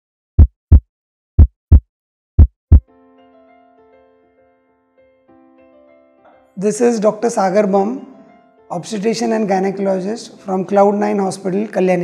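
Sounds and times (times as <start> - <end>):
heartbeat thumps: 0.4 - 0.8, 1.4 - 1.8, 2.4 - 2.8.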